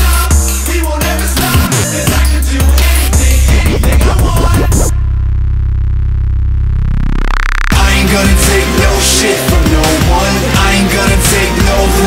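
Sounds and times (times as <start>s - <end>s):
held low synth bass note: 3.2s - 7.8s.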